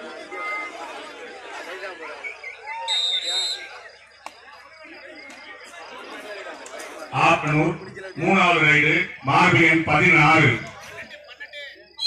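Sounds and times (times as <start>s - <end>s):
crowd chattering: 0.0s - 12.0s.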